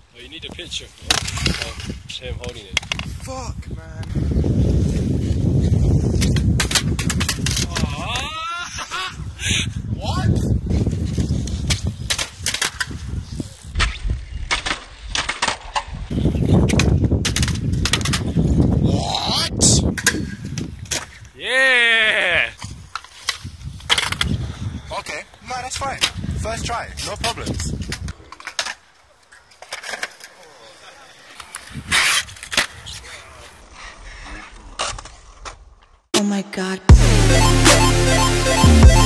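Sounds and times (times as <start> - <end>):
skateboard wheels rumbling on concrete: 10.4 - 18.8, 22.6 - 26.3
short wordless shouts: 21.4 - 22.6
skateboard clacking on ground: 27.6 - 33.1.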